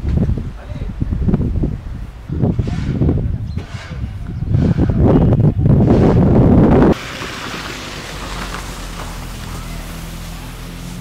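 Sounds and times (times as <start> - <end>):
steady outdoor hiss: 0.0 - 2.5, 6.9 - 11.0
wind buffeting microphone: 0.0 - 9.8.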